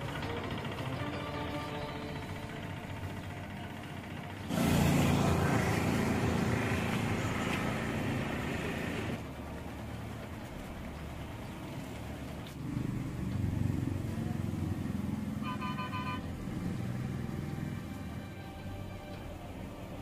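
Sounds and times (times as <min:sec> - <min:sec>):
background music: 0:00.0 - 0:04.4, 0:15.4 - 0:20.0
road noise: 0:00.0 - 0:20.0
vehicle engine running: 0:00.0 - 0:20.0.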